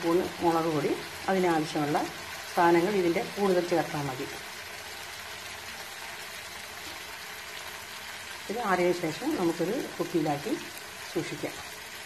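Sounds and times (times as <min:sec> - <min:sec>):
food frying in oil: 0:00.0 - 0:12.0.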